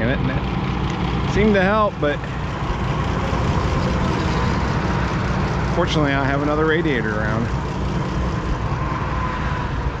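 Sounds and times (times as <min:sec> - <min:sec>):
tractor engine idling: 0:00.0 - 0:09.2.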